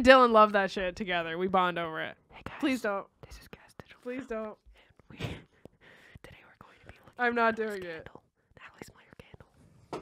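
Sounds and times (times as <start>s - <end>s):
person whispering into microphone: 2.3s - 5.5s, 6.1s - 9.6s.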